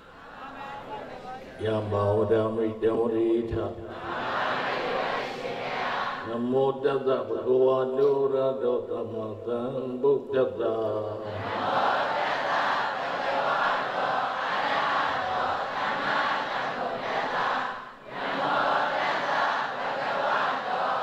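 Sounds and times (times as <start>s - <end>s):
congregation reciting in unison: 0.0s - 21.0s
man chanting: 1.2s - 3.9s, 6.2s - 11.2s.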